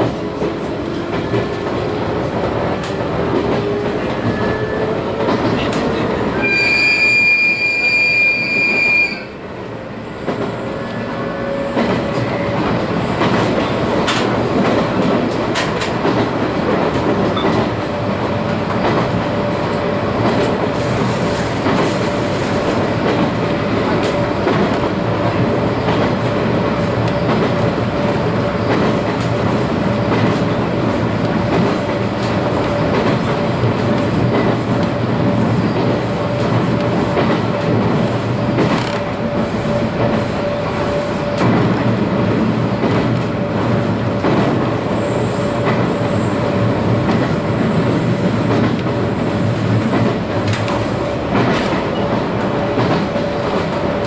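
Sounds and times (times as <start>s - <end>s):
rail clicks: 0.0s - 6.5s, 10.2s - 54.0s
train running rumble: 0.0s - 6.6s, 8.5s - 54.0s.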